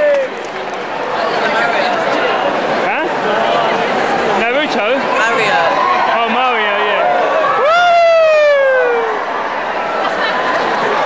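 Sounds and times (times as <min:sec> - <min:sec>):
crowd chatter in a hall: 0:00.0 - 0:11.0
person whooping cheer: 0:07.4 - 0:09.3.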